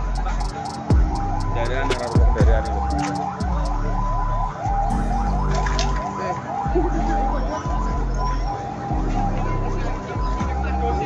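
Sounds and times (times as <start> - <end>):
emergency vehicle siren: 0.0 - 11.0.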